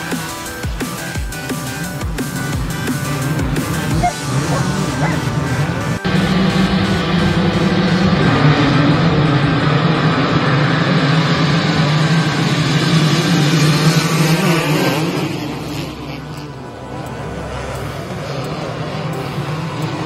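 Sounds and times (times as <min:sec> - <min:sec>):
dirt bike engines at full throttle: 0:00.0 - 0:20.0.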